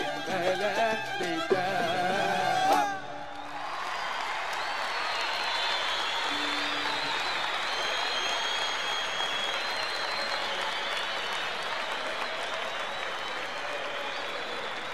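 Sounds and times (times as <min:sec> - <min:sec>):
audience applauding: 0:00.0 - 0:14.9
high whistles: 0:02.5 - 0:14.9.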